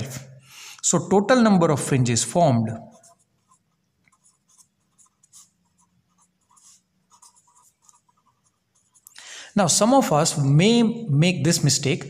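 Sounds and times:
marker pen writing on paper: 2.7 - 9.2.

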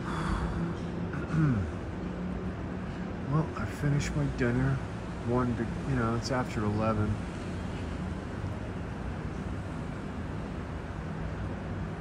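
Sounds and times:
faint continuous hum: 0.0 - 12.0
low city rumble: 0.0 - 12.0.

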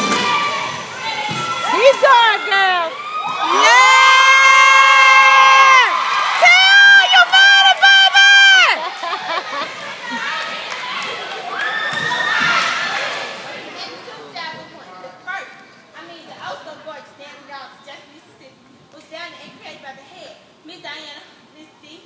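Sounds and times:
girls cheering and shouting: 0.0 - 13.0
girls screaming: 1.3 - 8.8.

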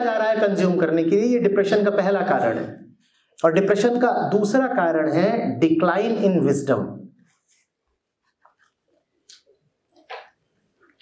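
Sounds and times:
man speaking: 0.0 - 7.0.

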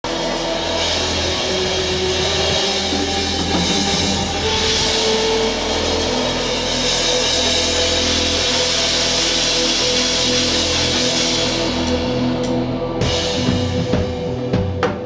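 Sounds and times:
electric guitar: 0.0 - 15.0.

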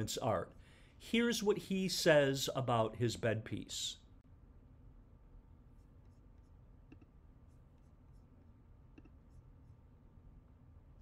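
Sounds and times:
computer mouse clicks: 6.9 - 7.2.

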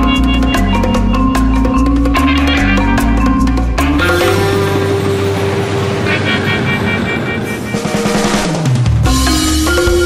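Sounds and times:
music with deep bass: 0.0 - 10.0
drum roll: 0.7 - 10.0.

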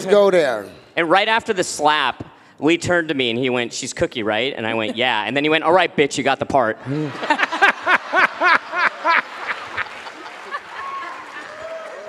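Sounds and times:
woman laughing into a microphone: 6.9 - 11.5.

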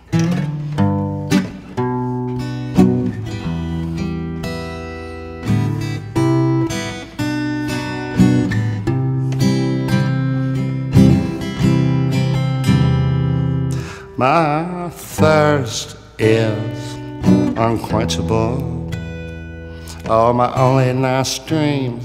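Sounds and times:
acoustic guitar strumming chords: 0.0 - 22.0.

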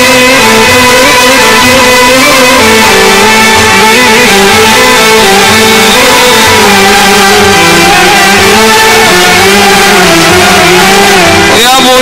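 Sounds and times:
steady low beat: 0.0 - 11.7
cane flute: 0.0 - 12.0
folk band instrumental: 0.0 - 12.0
keyboard: 0.0 - 12.0
violin: 0.0 - 12.0.

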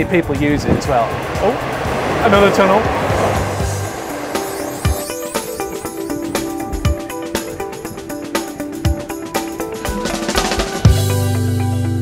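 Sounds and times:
held pitched notes: 0.0 - 12.0.

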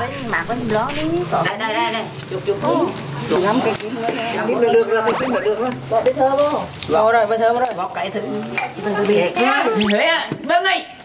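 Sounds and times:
dry palm leaves rustling: 0.0 - 4.5
voices talking: 0.0 - 10.4.

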